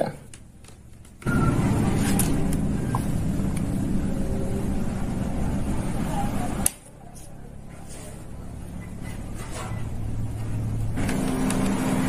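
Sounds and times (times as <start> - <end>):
steady low rumble: 1.4 - 9.1.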